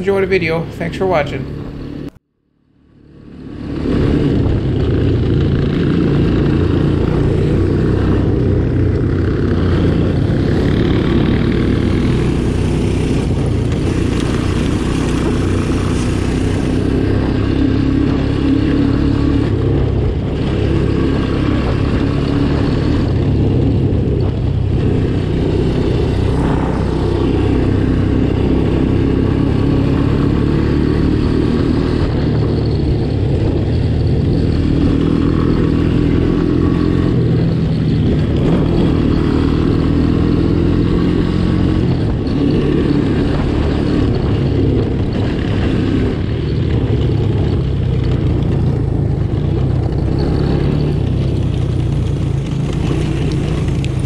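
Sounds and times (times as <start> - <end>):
three-wheeler engine revving: 0.0 - 2.2, 2.8 - 54.0.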